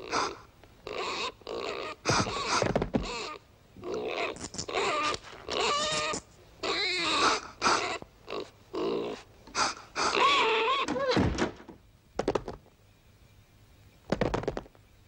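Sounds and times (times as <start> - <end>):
vocal grunts and snuffles: 0.0 - 10.4.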